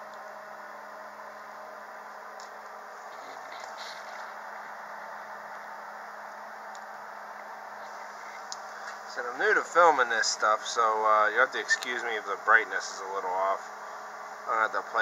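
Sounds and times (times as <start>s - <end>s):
faint constant hum: 0.0s - 15.0s.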